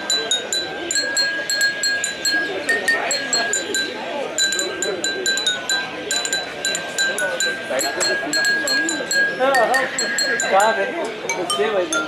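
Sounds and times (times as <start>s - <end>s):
ceramic bowls struck with sticks: 0.0s - 12.0s.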